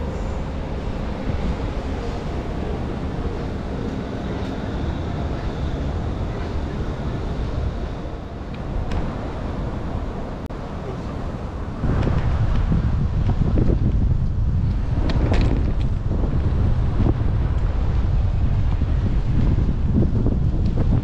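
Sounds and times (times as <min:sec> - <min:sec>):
hum of traffic: 0:00.0 - 0:21.0
wind rumbling on microphone: 0:00.0 - 0:21.0.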